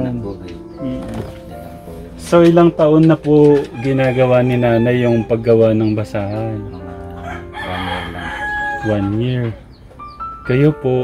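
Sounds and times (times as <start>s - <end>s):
rooster crowing: 3.5s - 5.5s, 7.2s - 9.6s.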